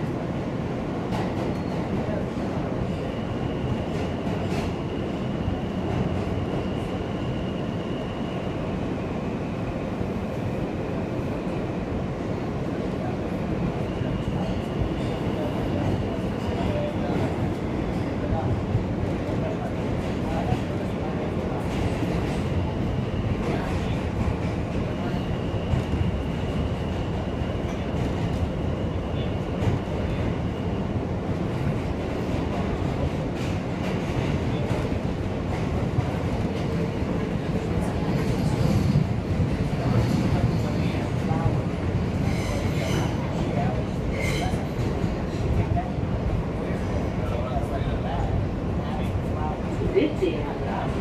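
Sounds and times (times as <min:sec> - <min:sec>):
subway wheels rumbling on track: 0:00.0 - 0:51.0.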